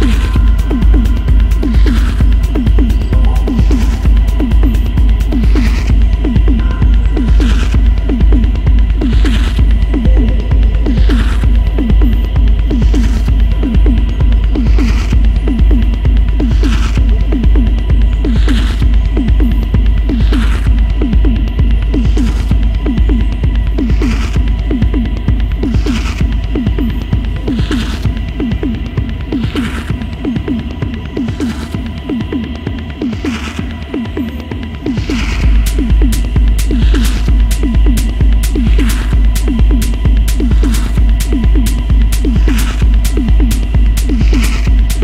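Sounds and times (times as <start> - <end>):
heavy sub-bass: 0.0 - 45.0
rolling bassline: 0.0 - 45.0
techno music: 0.0 - 45.0.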